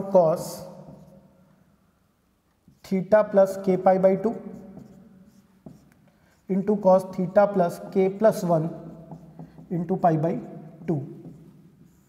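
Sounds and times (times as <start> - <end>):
marker pen scratching on whiteboard: 0.4 - 1.3, 2.5 - 12.0
pen tapping on board: 4.6 - 6.0, 8.7 - 11.9.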